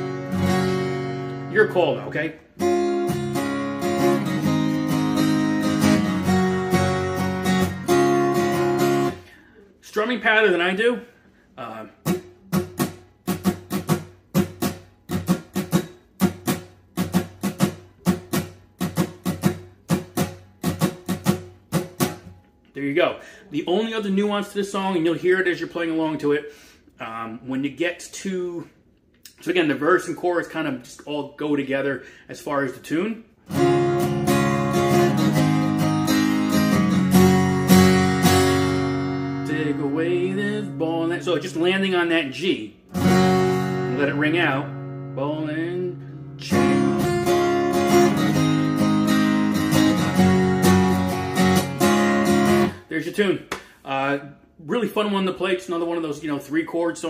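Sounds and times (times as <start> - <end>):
acoustic guitar strumming: 0.0 - 9.4, 11.9 - 22.6, 33.4 - 52.9
person's voice: 1.5 - 2.4, 39.4 - 42.8, 43.8 - 47.0, 52.9 - 57.0.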